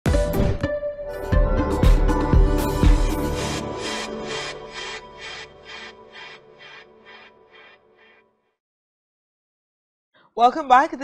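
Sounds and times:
theme music with swishing pulse: 0:01.1 - 0:07.7.

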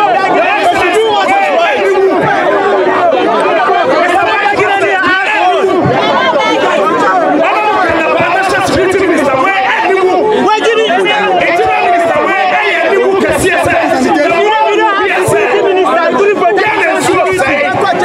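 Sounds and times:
voices chattering: 0:00.0 - 0:18.0
man talking loudly: 0:03.9 - 0:05.8, 0:07.4 - 0:18.0.

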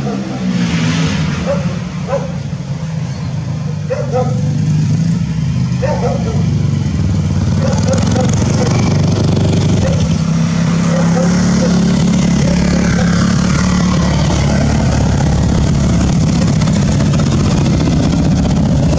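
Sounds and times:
motorcycles riding past: 0:00.0 - 0:18.9.

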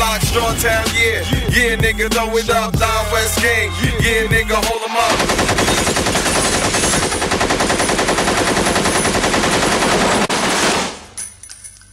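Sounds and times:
automatic gunfire: 0:05.1 - 0:11.2.

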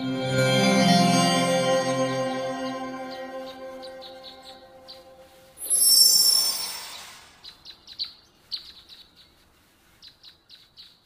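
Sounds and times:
musical swell: 0:00.0 - 0:06.8
bird chirping: 0:02.3 - 0:09.4.

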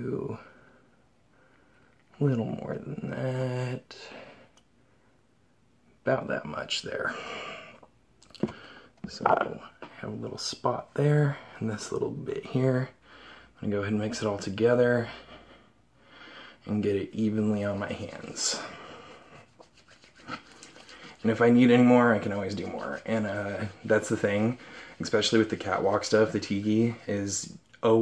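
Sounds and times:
plastic bottles being handled: 0:08.3 - 0:09.6
hands rubbing together: 0:19.2 - 0:26.6.

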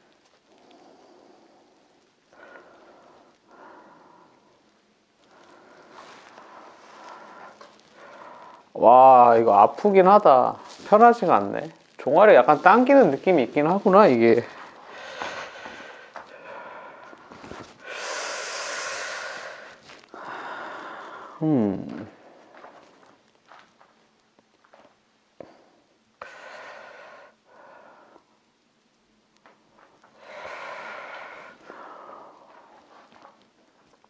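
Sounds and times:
rustling and handling noise: 0:00.0 - 0:17.9, 0:19.3 - 0:25.2, 0:29.0 - 0:34.0
soft touches: 0:05.3 - 0:08.6.

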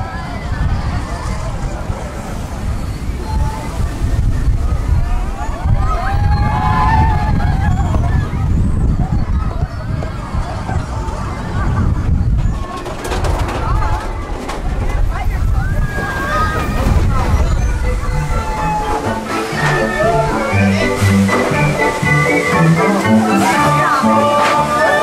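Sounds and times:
coaster cars rumbling on track: 0:00.0 - 0:25.0
riders' voices: 0:00.0 - 0:25.0
ride music: 0:02.2 - 0:25.0.

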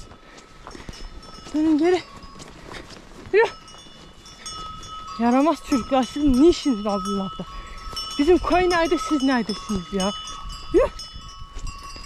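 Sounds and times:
woman shouting: 0:10.8 - 0:11.0.

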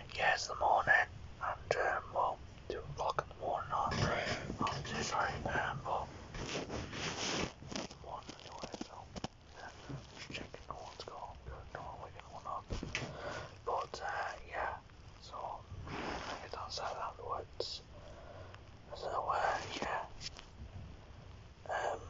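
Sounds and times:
person whispering: 0:00.0 - 0:06.1, 0:07.8 - 0:17.9, 0:18.9 - 0:20.2, 0:21.6 - 0:22.0.

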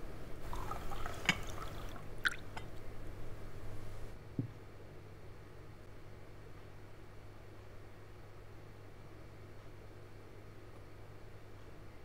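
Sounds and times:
tea pouring into cup: 0:00.4 - 0:02.9.

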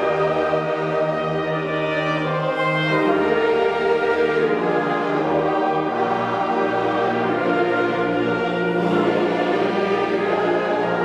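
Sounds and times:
audience singing along: 0:00.0 - 0:11.0
men's choir singing a hymn: 0:00.0 - 0:11.0
wind band playing: 0:00.0 - 0:11.0.

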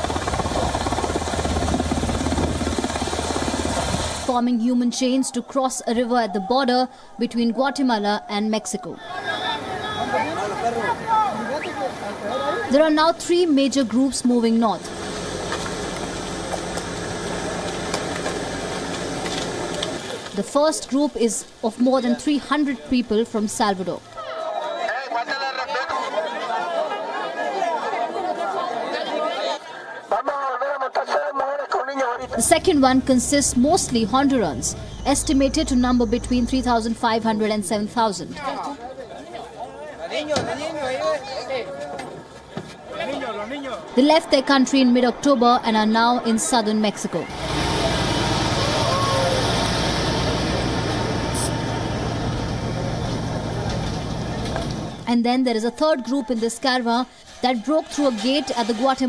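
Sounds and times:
crowd chatter: 0:04.9 - 0:14.0, 0:22.0 - 0:59.0
truck engine drone: 0:14.3 - 0:20.2, 0:32.2 - 0:37.7, 0:47.0 - 0:55.1
road and wind noise: 0:32.2 - 0:37.5, 0:44.2 - 0:55.1.

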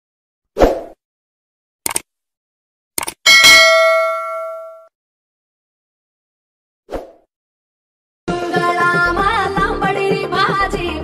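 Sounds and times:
notification bell ding: 0:03.3 - 0:04.9.

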